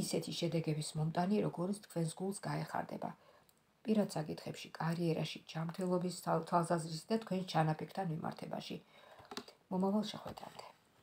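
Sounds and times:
woman speaking: 0.0 - 3.2, 3.8 - 10.8.

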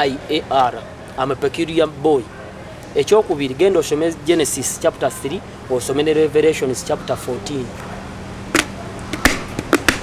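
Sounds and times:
sharp hand claps: 8.6 - 10.0.

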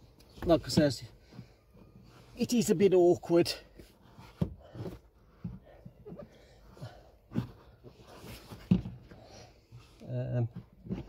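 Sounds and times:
heavy breaths and grunts: 3.5 - 11.0.

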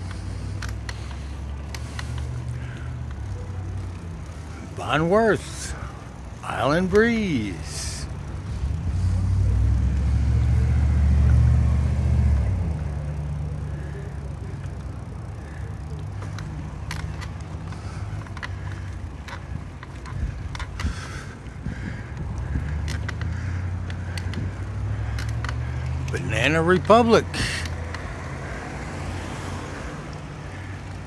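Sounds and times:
car moving slowly: 0.0 - 31.0
vehicle rumble on paved road: 0.0 - 31.0.

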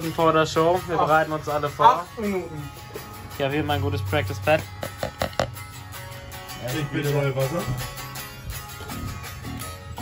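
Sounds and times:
background music: 0.0 - 10.0
drumsticks tapping practice pad: 4.8 - 5.6.

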